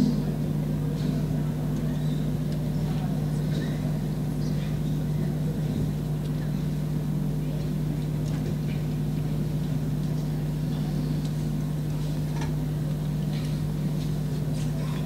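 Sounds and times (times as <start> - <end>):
faint indistinct voices: 0.0 - 15.0
steady low hum: 0.0 - 15.0.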